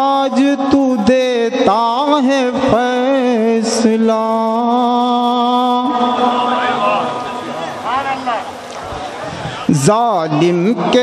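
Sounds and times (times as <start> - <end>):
man chanting a long note: 0.0 - 8.5.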